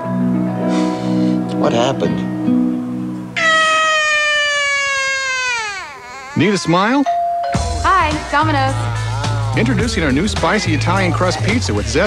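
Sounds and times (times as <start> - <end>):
toddler wailing: 3.4 - 7.0.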